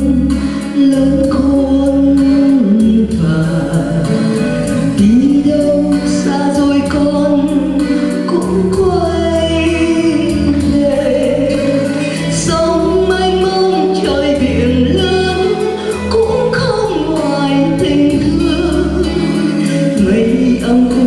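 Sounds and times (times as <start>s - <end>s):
instrumental accompaniment: 0.0s - 21.0s
woman singing into microphone: 0.0s - 21.0s.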